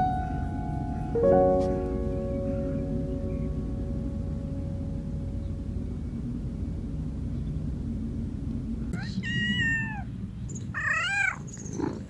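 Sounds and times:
kitten meowing: 9.0 - 10.1, 10.8 - 11.4.

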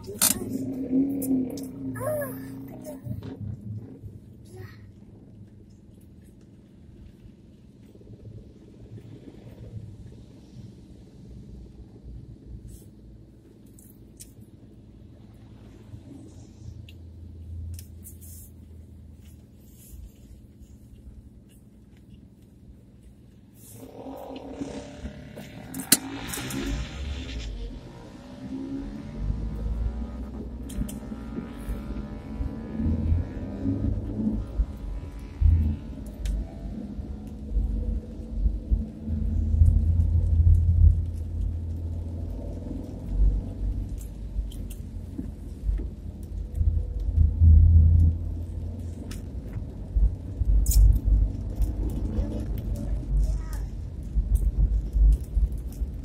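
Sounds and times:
car driving rumble from cabin: 0.0 - 56.0.

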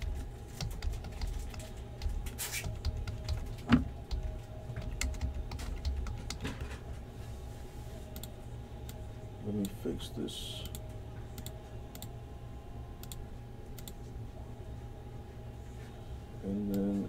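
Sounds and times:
computer keyboard key clicks: 4.8 - 6.4.

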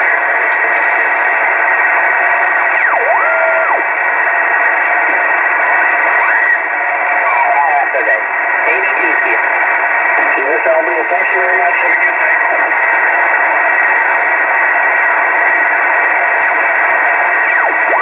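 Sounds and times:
garbled radio voices: 0.0 - 18.0
radio band noise: 0.0 - 18.0.

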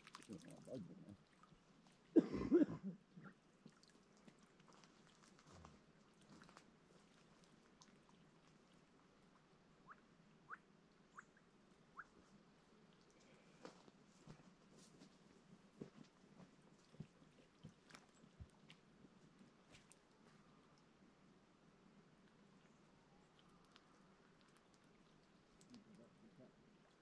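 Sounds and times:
faint scattered ticks: 3.0 - 27.0.

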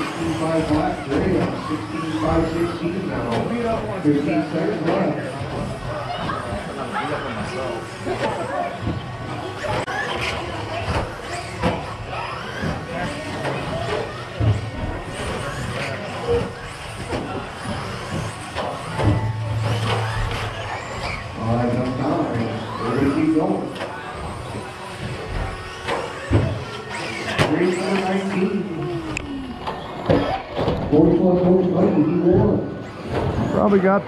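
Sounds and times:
electric toy trucks running: 0.0 - 34.0
people talking: 0.0 - 34.0.

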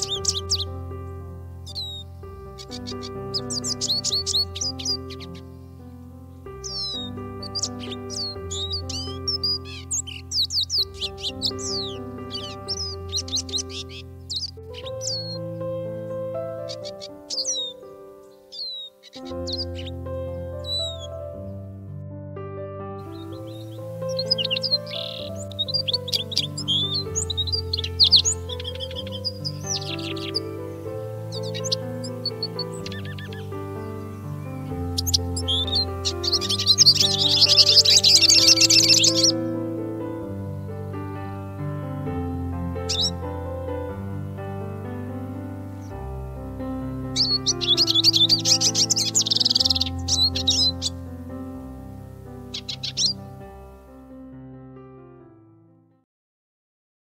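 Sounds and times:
birds chirping and trilling: 0.0 - 21.6, 23.0 - 54.0
calm background music: 0.0 - 55.9.

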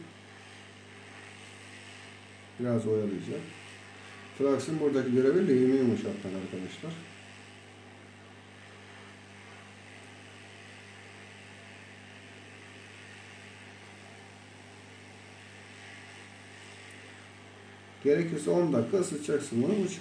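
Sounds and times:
hot air blower airflow: 0.0 - 20.0
low electrical hum: 0.0 - 20.0.

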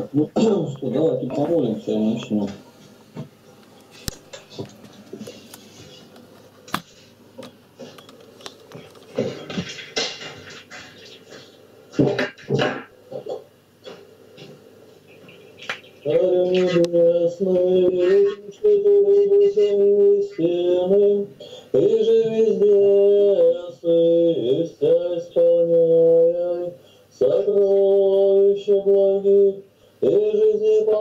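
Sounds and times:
person chanting a prayer: 16.0 - 31.0.

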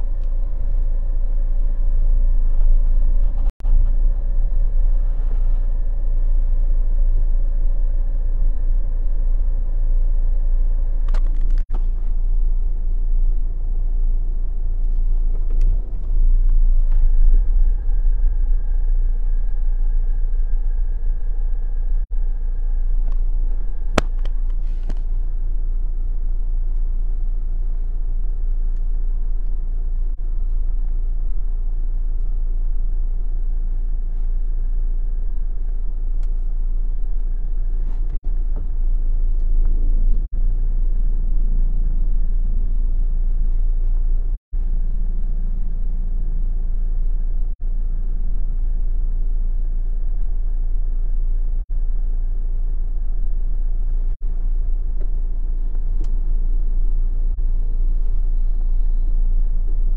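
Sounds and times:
car rumble from inside: 0.0 - 59.9.

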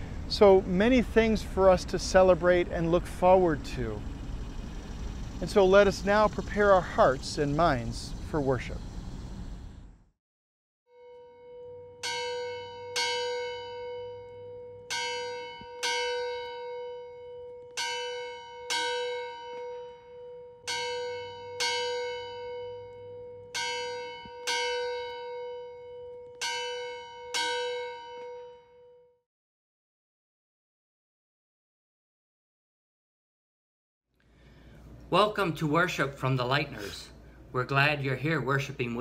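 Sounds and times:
church bell tolling: 11.0 - 29.1.

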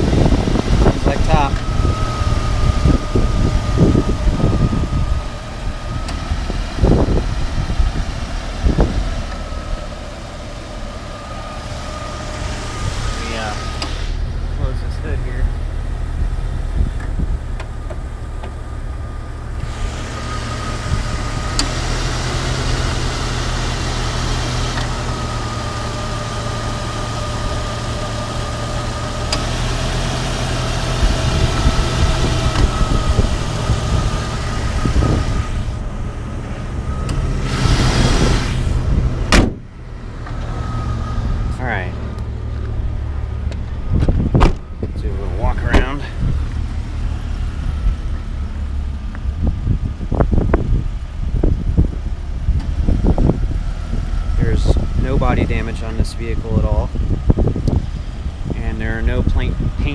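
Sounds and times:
low thumps: 0.0 - 18.7, 31.0 - 54.8
car engine idling: 0.0 - 59.9
faint steady whine: 0.2 - 21.7.

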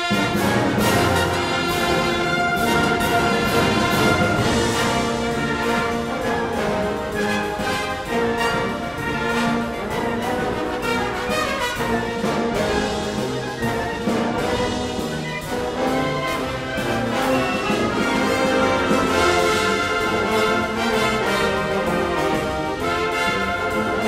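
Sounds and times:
military band with bugles: 0.0 - 24.0
percussion strokes: 0.0 - 24.0.

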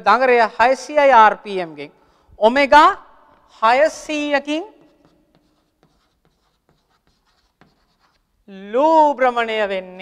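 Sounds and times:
chalk scratching on chalkboard: 4.6 - 8.4.

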